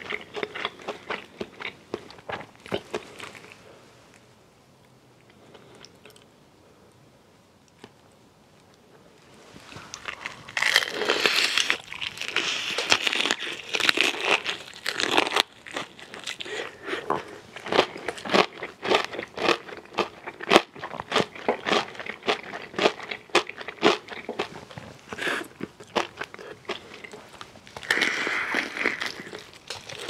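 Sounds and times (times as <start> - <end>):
chewing with sharp crunches: 0.0 - 3.7, 9.6 - 30.0.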